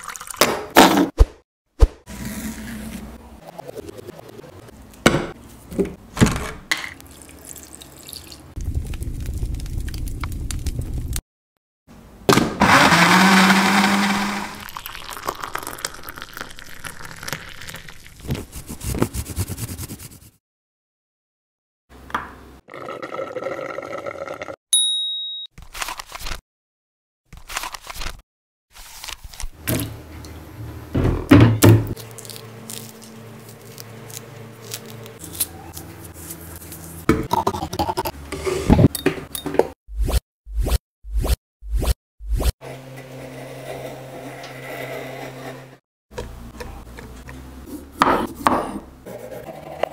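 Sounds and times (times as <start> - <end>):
blender running: 12.6 - 14.7
smoothie pouring into a glass: 12.8 - 18.2
orange peel tearing: 32.0 - 36.9.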